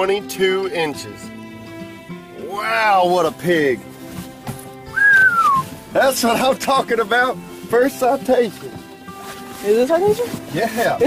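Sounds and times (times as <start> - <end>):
person whistling downward note: 4.9 - 5.7.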